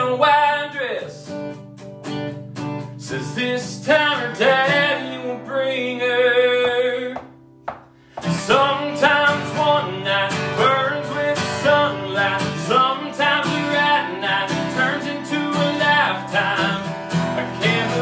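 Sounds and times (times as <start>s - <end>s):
man singing: 0.0s - 1.3s, 3.0s - 7.3s, 8.2s - 18.0s
acoustic guitar strumming: 0.0s - 18.0s.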